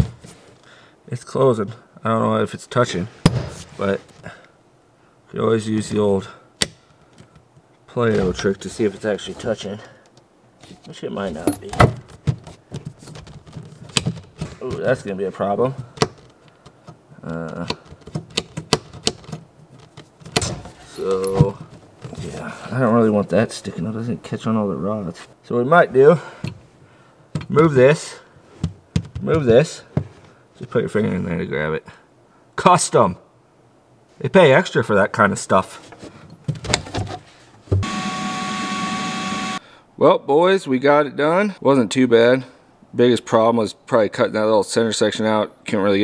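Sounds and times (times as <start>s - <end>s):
hatch latch clicking and knocking: 17.7s - 19.4s
shop vacuum running with a whine: 37.8s - 39.6s.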